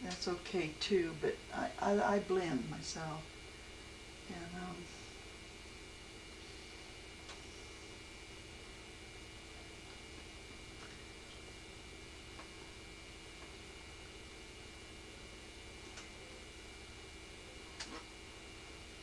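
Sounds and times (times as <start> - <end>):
room hiss and hum: 0.0 - 19.0.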